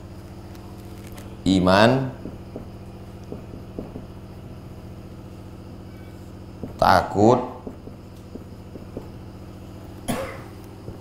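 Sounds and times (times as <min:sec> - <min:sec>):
low machine hum with throb: 0:00.0 - 0:11.0
marker writing on whiteboard: 0:01.5 - 0:04.2, 0:06.1 - 0:09.2.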